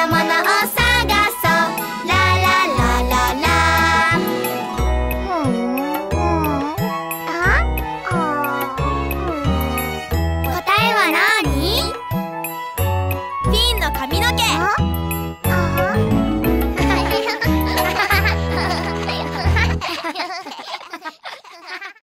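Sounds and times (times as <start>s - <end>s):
upbeat children's song music: 0.0s - 22.0s
cartoon children's voices chattering: 5.2s - 9.8s.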